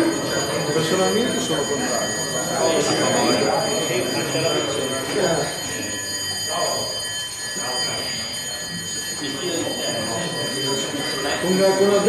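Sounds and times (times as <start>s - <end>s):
indistinct talk of several people: 0.0s - 12.0s.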